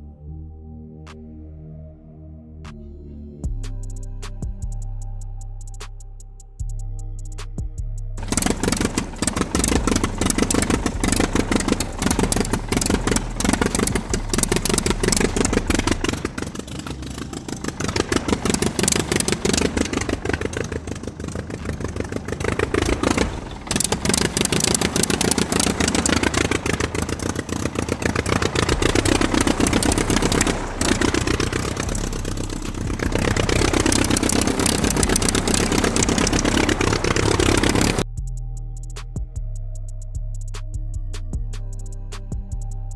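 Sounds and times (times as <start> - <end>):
toy locomotive chugging: 8.2 - 38.0.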